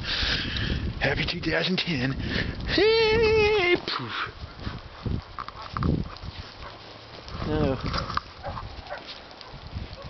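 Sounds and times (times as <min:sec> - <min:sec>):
dogs rustling and crunching in snow: 0:04.4 - 0:10.0.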